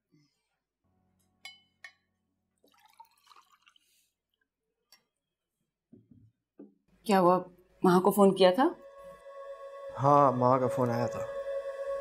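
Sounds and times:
glass clinks: 1.5s - 2.0s
juice pouring into glass: 2.6s - 4.0s.

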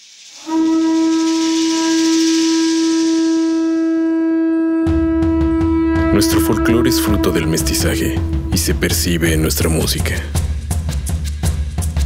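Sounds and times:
high airy hiss: 0.0s - 0.5s
conch shell trumpet note: 0.4s - 9.9s.

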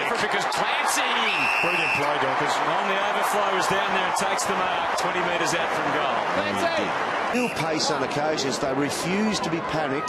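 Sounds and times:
stadium crowd cheering: 0.0s - 10.0s
referee whistle blow: 1.1s - 2.1s.

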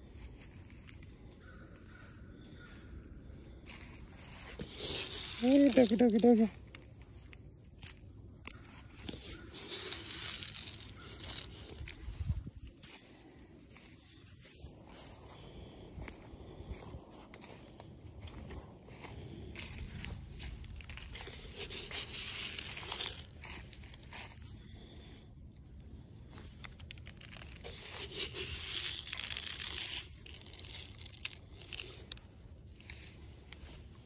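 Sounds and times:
footsteps crunching dry leaves: 0.0s - 24.9s, 26.4s - 34.0s.

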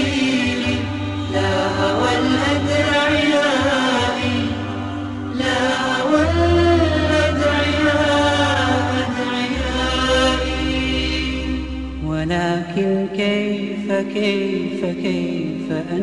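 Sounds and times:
wordless chanted vocals in harmony: 0.0s - 16.0s
low drone: 4.3s - 14.0s.

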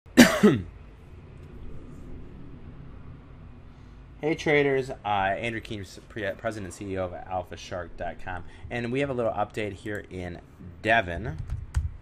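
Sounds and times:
faint steady background hum: 0.1s - 12.0s
man clearing his throat: 0.2s - 0.7s.

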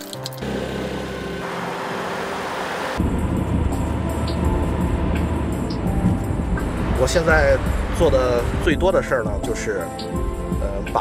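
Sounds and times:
background music: 0.0s - 11.0s
road noise inside moving car: 0.4s - 9.0s.

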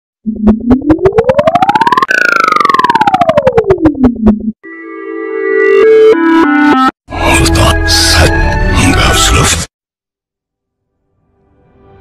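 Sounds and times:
pulsing rising electronic tone: 0.2s - 4.6s.

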